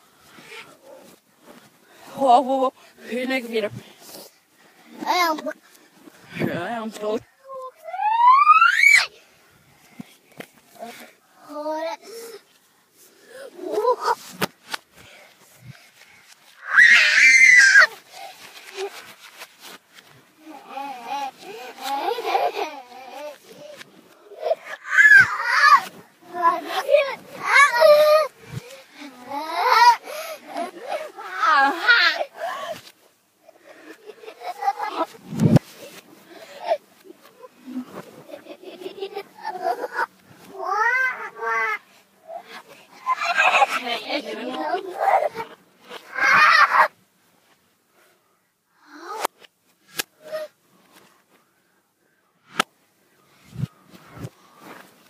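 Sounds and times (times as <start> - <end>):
reversed children's voices: 0.0 - 14.4, 15.2 - 48.1, 48.7 - 49.4.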